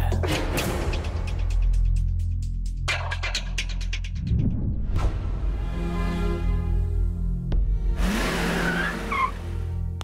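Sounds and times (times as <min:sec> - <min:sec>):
film score low notes: 0:00.0 - 0:10.0.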